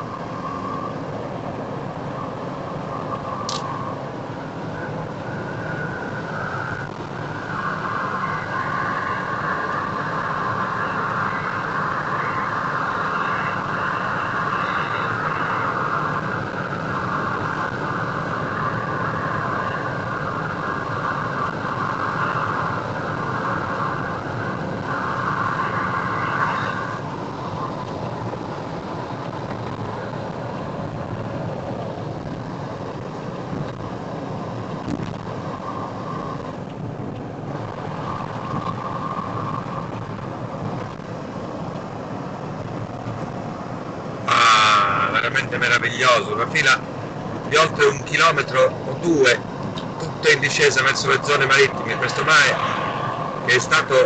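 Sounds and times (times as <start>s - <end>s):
car engine and road noise: 0.0s - 54.0s.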